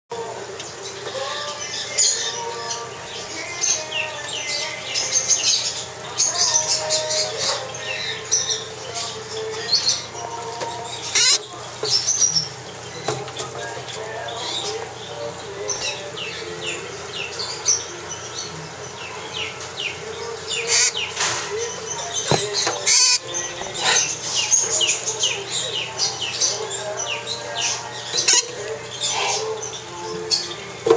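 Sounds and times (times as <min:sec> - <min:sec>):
parrot chirping: 0:00.8 - 0:30.8.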